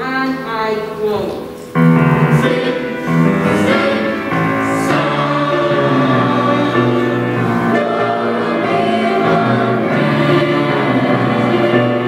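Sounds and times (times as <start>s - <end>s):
children's choir singing: 2.0s - 12.0s.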